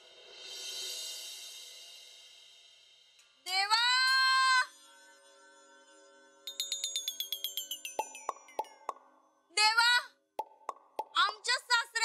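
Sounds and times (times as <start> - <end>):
woman speaking: 11.1 - 12.0.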